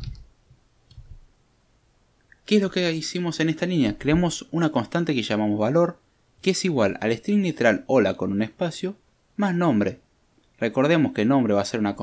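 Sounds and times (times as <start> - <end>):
keyboard keys clicking: 0.0 - 0.2.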